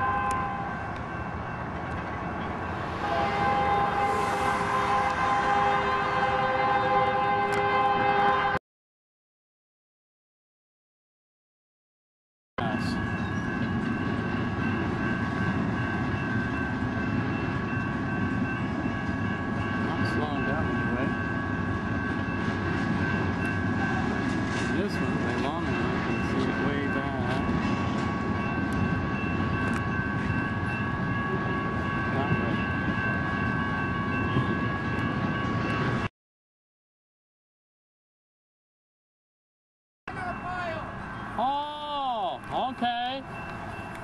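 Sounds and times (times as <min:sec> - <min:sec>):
freight train rumbling past: 0:00.0 - 0:08.6, 0:12.6 - 0:36.1, 0:40.1 - 0:44.0.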